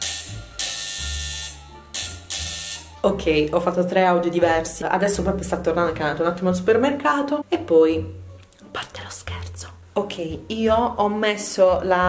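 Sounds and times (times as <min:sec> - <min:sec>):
intercom buzzer: 0:00.0 - 0:03.0.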